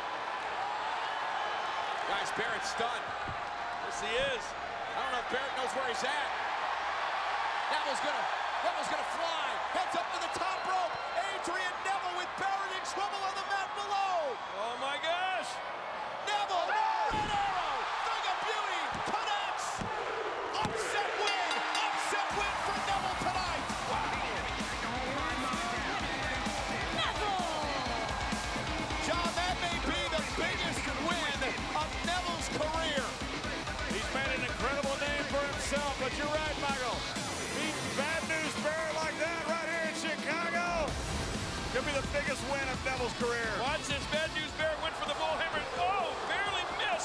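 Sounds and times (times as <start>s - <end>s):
crowd cheering: 0.0s - 47.0s
thuds in wrestling ring: 17.1s - 17.6s
theme music with heavy beat: 22.2s - 45.1s.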